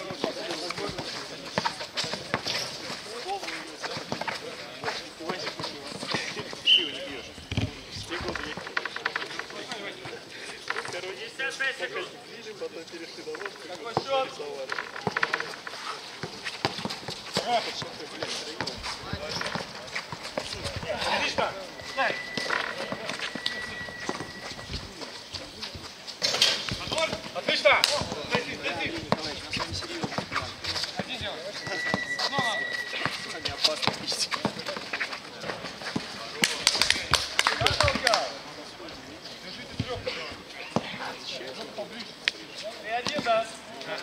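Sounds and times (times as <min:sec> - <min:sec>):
running footsteps: 0:14.8 - 0:38.4.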